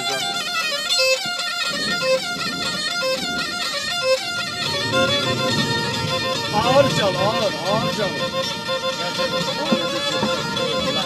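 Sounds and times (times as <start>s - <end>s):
bowed fiddles playing folk tune: 0.0s - 11.0s.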